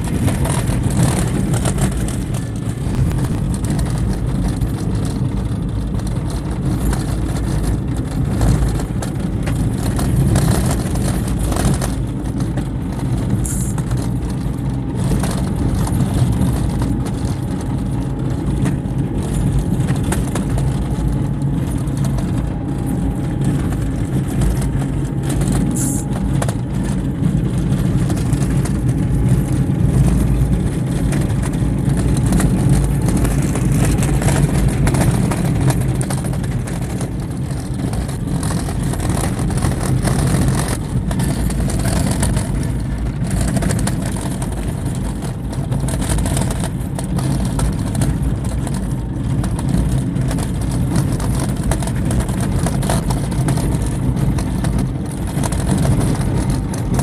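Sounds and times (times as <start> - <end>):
car rumbling on dirt road: 0.0 - 57.0
knocks and rattles: 0.0 - 57.0.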